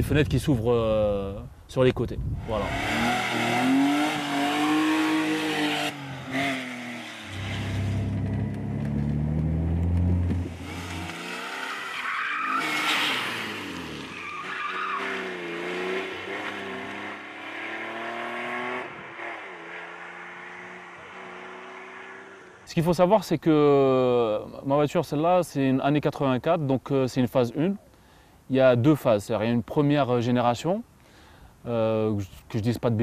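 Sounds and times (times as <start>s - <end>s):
car engine revving hard: 2.5s - 22.6s
tyres squealing: 11.0s - 15.4s.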